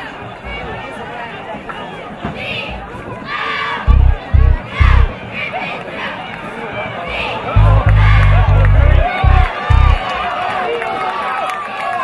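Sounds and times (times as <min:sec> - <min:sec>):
crowd shouting and cheering: 0:00.0 - 0:12.0
hip-hop bass notes: 0:03.9 - 0:05.1, 0:07.6 - 0:10.1.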